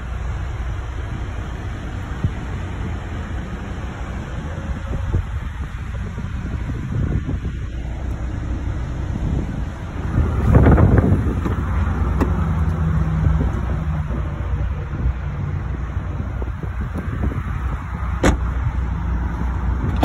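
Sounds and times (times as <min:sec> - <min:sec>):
wind rumbling on microphone: 0:00.0 - 0:20.0.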